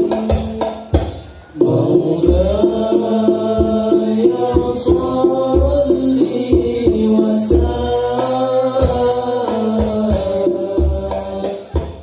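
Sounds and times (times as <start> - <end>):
hand-struck frame drums: 0.0 - 12.0.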